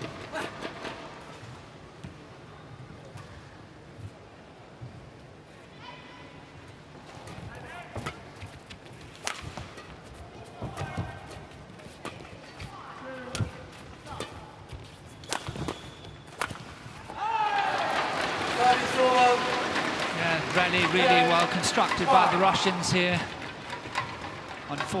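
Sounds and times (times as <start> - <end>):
racket hitting shuttlecock: 9.2 - 12.4, 15.2 - 18.7
shoes squeaking on court: 14.1 - 16.5
crowd cheering and shouting: 17.1 - 22.6.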